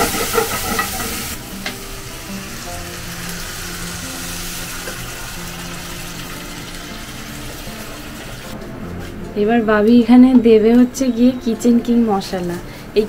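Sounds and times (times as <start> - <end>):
pan sizzling: 0.0 - 8.6
soft background music: 0.0 - 13.0.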